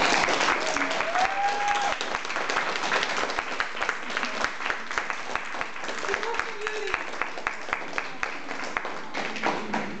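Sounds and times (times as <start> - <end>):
people clapping: 0.0 - 10.0.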